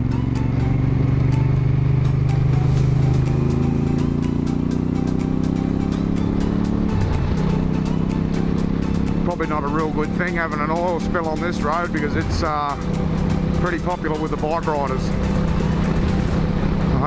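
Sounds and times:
motorcycle engine accelerating: 0.0 - 17.0.

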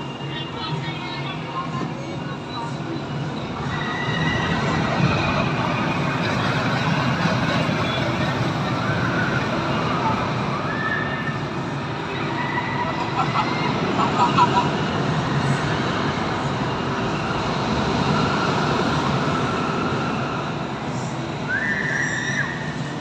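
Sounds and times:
distant crowd voices: 0.0 - 23.0
ride machinery rumbling: 0.0 - 23.0.

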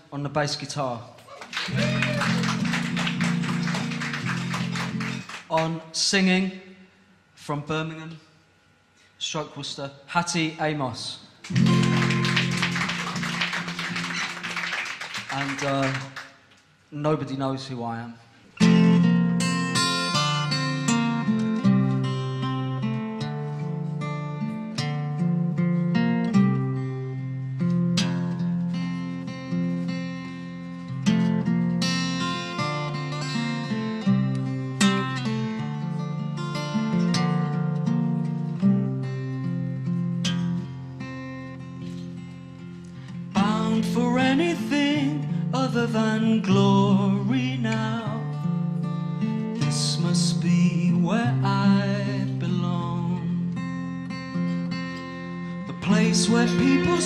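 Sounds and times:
acoustic guitar picking: 1.7 - 5.8, 11.4 - 16.4, 18.5 - 57.0
violin playing: 55.8 - 57.0.

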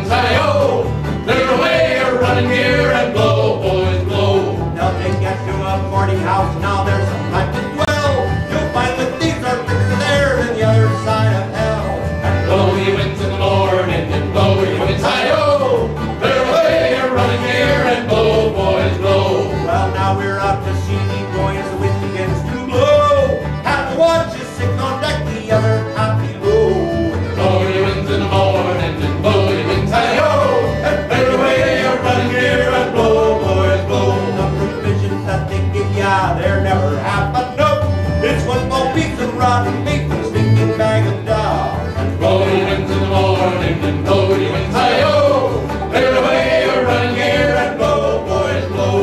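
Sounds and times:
accordion: 0.0 - 49.0
acoustic guitar: 0.0 - 49.0
strummed banjo: 0.0 - 49.0
upright bass: 0.0 - 49.0.

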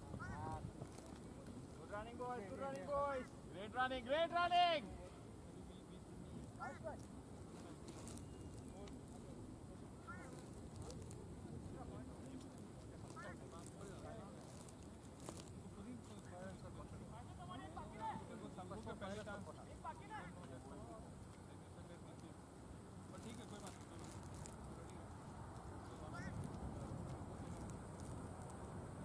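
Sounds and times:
distant people talking: 0.0 - 29.0.

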